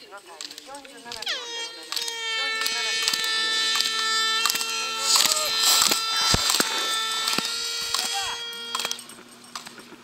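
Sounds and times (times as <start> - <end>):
horns holding steady notes: 1.2 - 9.2.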